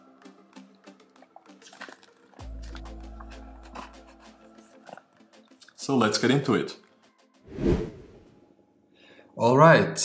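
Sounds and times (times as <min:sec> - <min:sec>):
transition whoosh: 0:07.5 - 0:08.3.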